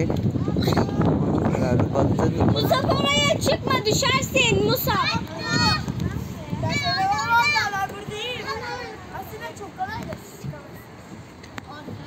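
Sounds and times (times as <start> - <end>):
faint children's voices: 0.0 - 12.0.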